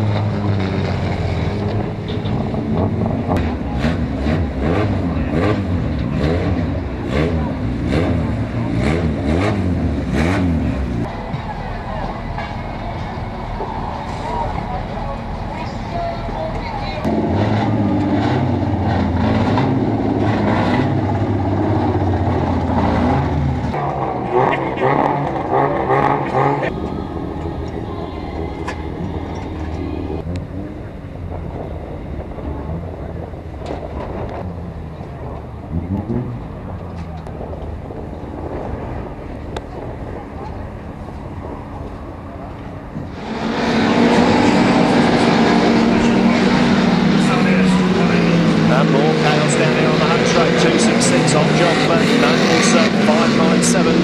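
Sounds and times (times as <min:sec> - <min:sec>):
engine revving: 0:00.0 - 0:11.2, 0:16.7 - 0:54.0
race car engines running: 0:00.0 - 0:54.0
car driving past: 0:41.4 - 0:54.0.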